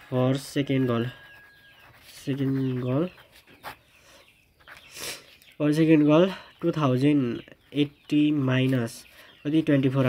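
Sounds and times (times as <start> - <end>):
pen scratching on paper: 0.0 - 3.8.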